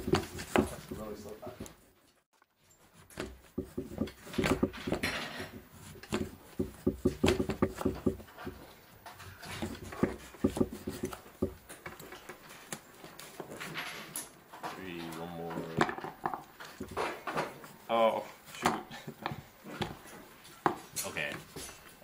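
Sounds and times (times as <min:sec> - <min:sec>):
clatter of small parts: 0:04.1 - 0:05.6, 0:08.0 - 0:17.6.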